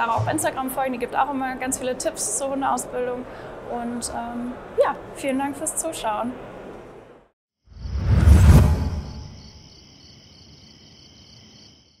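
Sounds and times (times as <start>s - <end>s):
crickets chirping: 8.9s - 12.0s.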